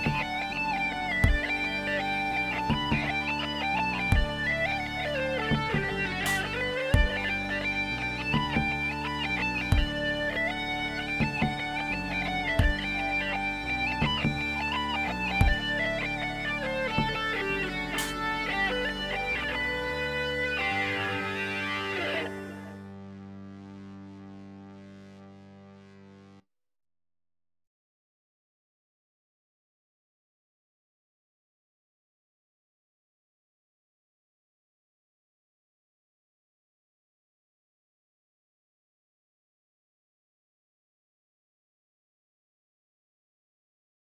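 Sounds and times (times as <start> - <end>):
steady low drone: 0.0 - 25.8
distorted plucked-string melody: 0.0 - 26.4.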